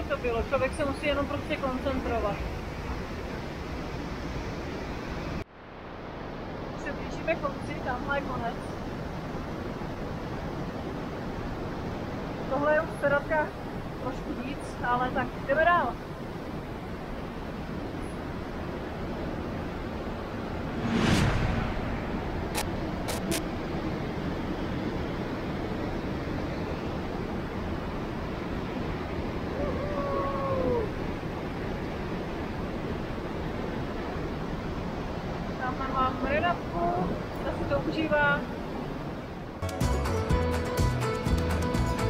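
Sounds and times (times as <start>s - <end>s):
river water rushing: 0.0s - 39.6s
loud thump: 20.7s - 22.8s
sharp clicks: 22.5s - 23.4s.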